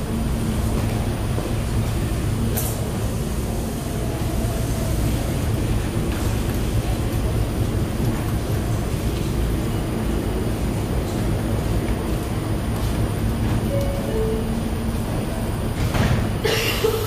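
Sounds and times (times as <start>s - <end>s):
subway train humming and rumbling: 0.0s - 17.0s.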